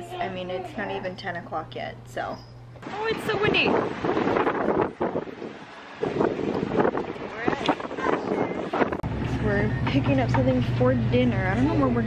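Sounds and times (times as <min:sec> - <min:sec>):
wind buffeting microphone: 0:02.8 - 0:12.0.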